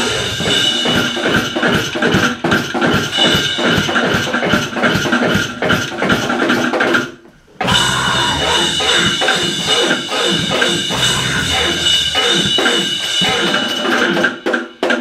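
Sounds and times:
drum kit pounding fast hits: 0:00.0 - 0:15.0
dense electronic wall of sound: 0:07.6 - 0:13.3
high steady tone: 0:07.6 - 0:13.7.

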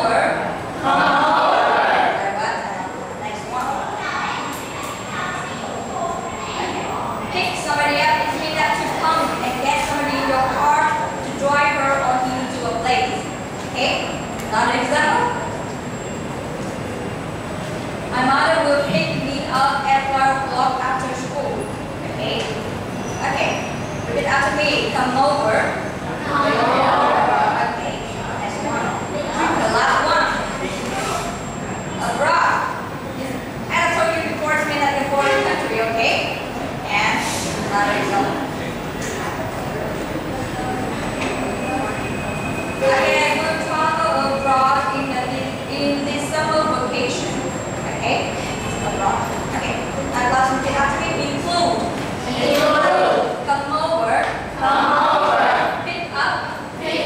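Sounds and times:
room background noise: 0:00.0 - 0:57.0.

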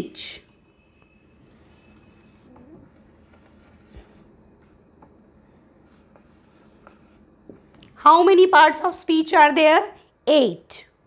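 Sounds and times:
marker writing on whiteboard: 0:01.6 - 0:04.3, 0:05.8 - 0:07.3.

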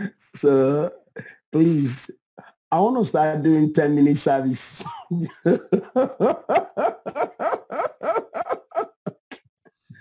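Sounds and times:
man laughing heartily: 0:04.9 - 0:09.4.

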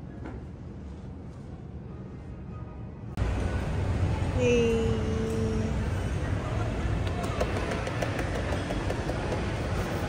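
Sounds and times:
busy shopping mall background: 0:00.0 - 0:10.0.

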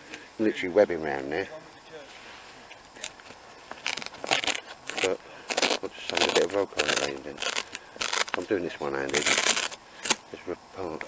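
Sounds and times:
man speaking indistinctly: 0:00.4 - 0:02.1, 0:05.0 - 0:07.6, 0:08.3 - 0:09.4, 0:10.3 - 0:11.0.

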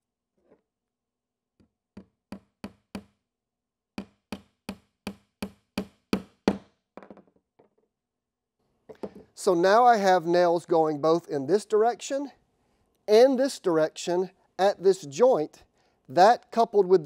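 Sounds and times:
hammer striking nail into wood: 0:01.9 - 0:03.2, 0:04.0 - 0:06.8.

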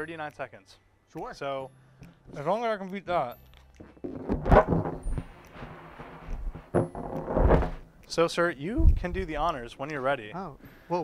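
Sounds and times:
man blowing into a balloon: 0:04.0 - 0:08.1
dull low thumps: 0:08.7 - 0:09.4.

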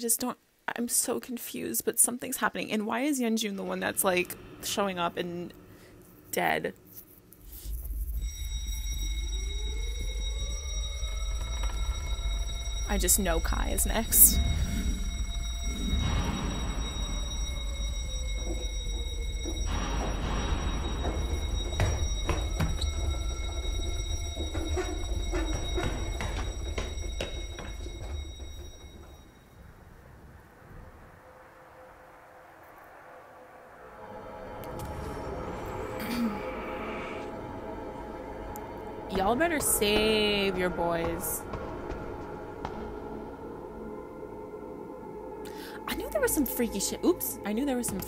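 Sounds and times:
deep steady rumble: 0:07.5 - 0:29.3
slowly rising tone: 0:07.5 - 0:39.6.

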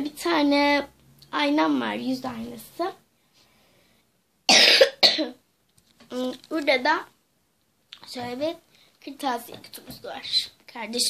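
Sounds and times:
girl coughing: 0:04.5 - 0:05.4.

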